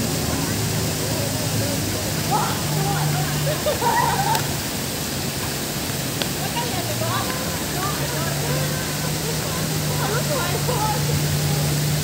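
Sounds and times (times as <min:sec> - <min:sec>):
indistinct voices: 0:00.0 - 0:05.2, 0:06.3 - 0:12.0
fountain water splashing: 0:00.0 - 0:12.0.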